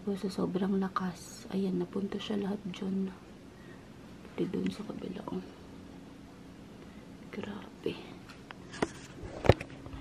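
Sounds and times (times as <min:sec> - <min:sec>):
faint steady hum: 0:00.0 - 0:10.0
person whispering: 0:07.4 - 0:08.2.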